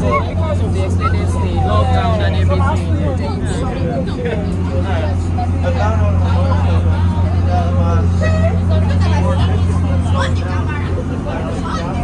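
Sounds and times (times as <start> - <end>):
boat engine droning: 0.0 - 12.0
people talking: 0.0 - 12.0.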